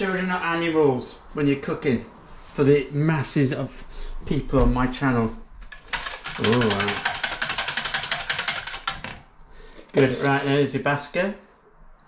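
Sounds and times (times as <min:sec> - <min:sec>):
rapid mechanical clicking: 0:05.7 - 0:09.2.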